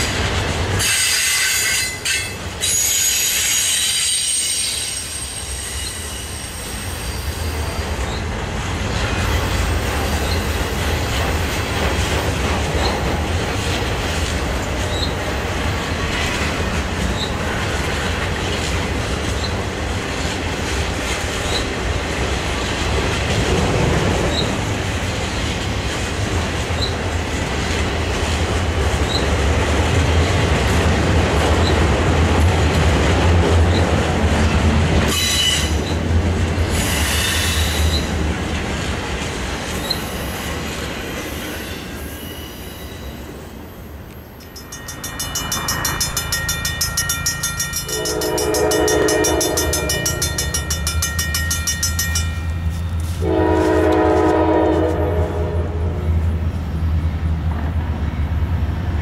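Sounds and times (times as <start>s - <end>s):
freight train wheels rumbling: 0.0s - 59.0s
high wheel squeals: 0.8s - 8.3s, 39.8s - 53.0s.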